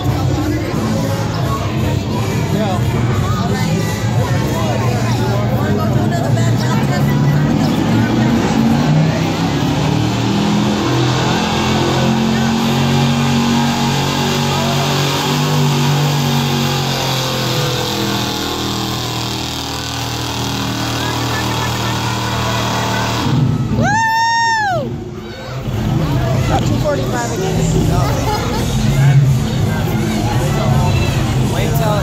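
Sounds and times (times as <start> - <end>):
truck engine at high revs: 0.0 - 24.0, 24.8 - 32.0.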